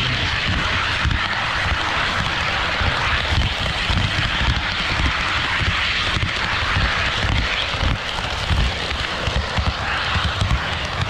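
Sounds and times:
low rumble: 0.0s - 11.0s
model train wheels on rail: 0.0s - 11.0s.

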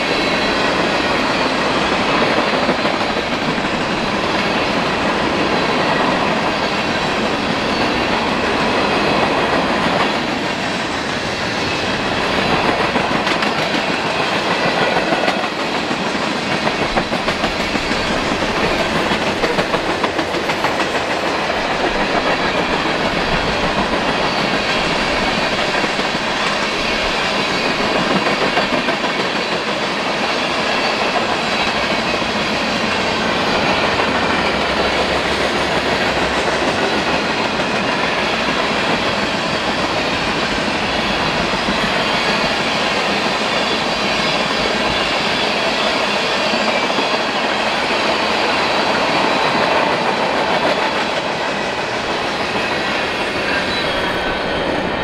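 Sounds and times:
freight train rolling past: 0.0s - 55.0s.

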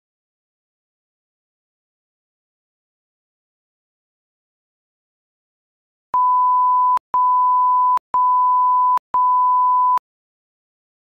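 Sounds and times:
electronic tone beeps: 6.2s - 10.0s.

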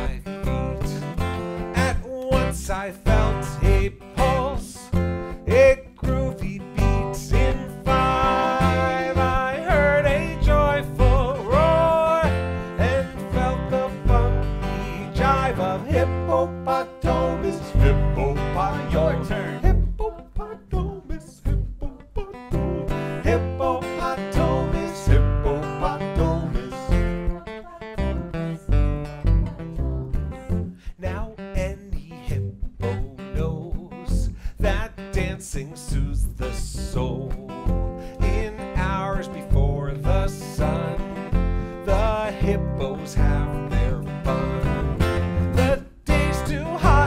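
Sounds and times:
acoustic guitar strumming: 0.0s - 47.0s
double bass plucked: 0.0s - 47.0s.

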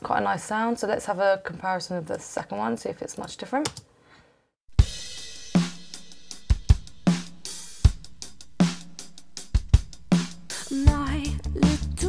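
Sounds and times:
drum kit beat: 4.7s - 12.0s
pop-rock song: 10.6s - 12.0s.

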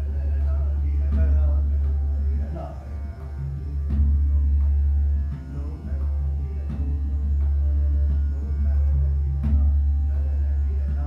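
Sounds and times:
drum strokes: 0.0s - 11.0s
steady drone: 0.0s - 11.0s.

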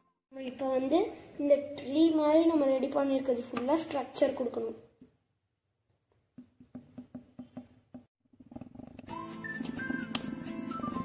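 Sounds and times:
voice: 0.3s - 4.9s
background music: 9.0s - 11.0s.

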